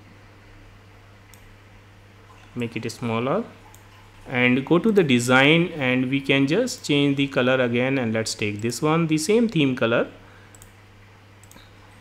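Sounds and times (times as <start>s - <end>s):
low steady hum: 0.0s - 12.0s
computer mouse clicks: 10.5s - 10.8s, 11.4s - 11.7s.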